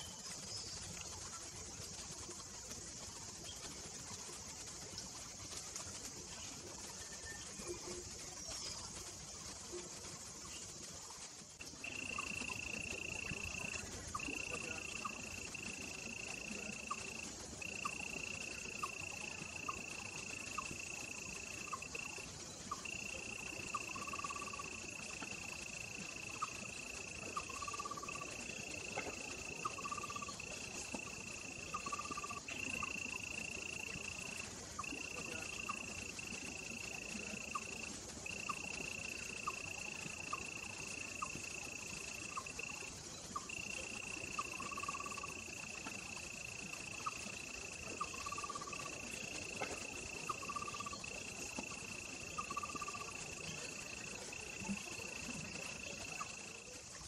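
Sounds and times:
faint high hiss: 0.0s - 57.0s
insect high trill: 0.0s - 57.0s.

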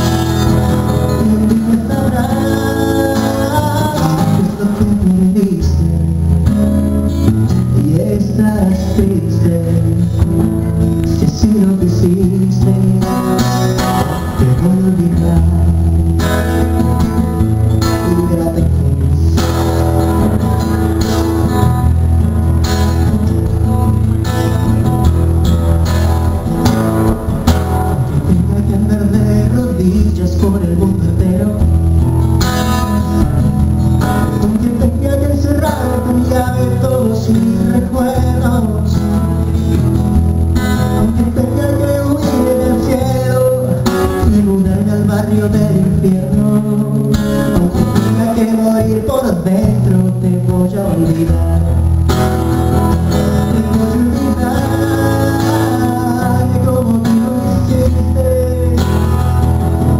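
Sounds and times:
man singing pop ballad: 0.0s - 6.2s, 7.4s - 20.1s, 28.0s - 32.0s, 34.0s - 40.0s, 40.8s - 59.6s
acoustic guitar strumming: 0.0s - 59.9s.

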